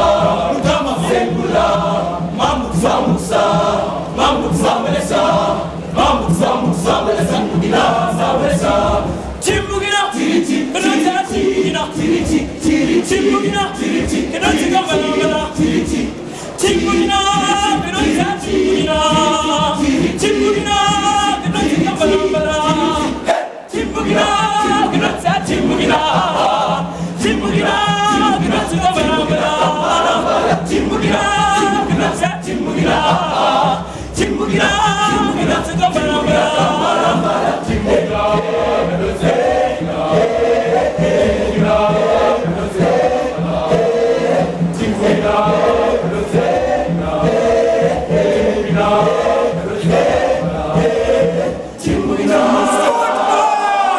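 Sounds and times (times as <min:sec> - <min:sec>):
boys' choir singing a cappella: 0:00.0 - 0:53.9.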